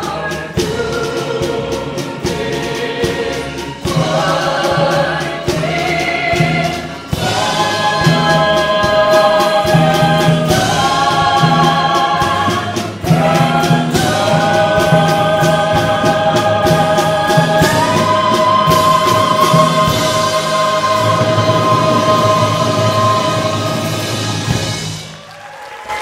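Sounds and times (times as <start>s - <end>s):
soloists singing in harmony: 0.0s - 25.1s
orchestra playing: 0.0s - 25.8s.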